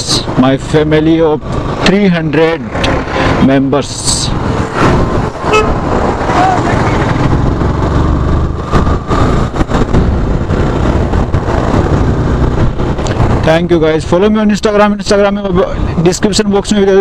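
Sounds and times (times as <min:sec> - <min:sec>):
wind rushing over microphone: 0:00.0 - 0:17.0
motorcycle engine running: 0:04.3 - 0:13.5
vehicle horn toot: 0:05.5 - 0:05.8.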